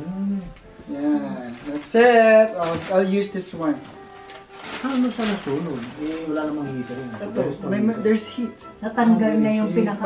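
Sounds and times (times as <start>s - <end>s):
cardboard box rustling: 1.6s - 7.0s.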